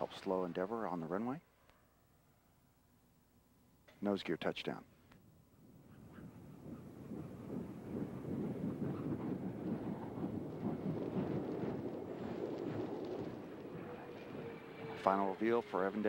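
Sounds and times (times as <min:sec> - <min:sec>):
wind rushing on microphone: 0:05.2 - 0:16.0.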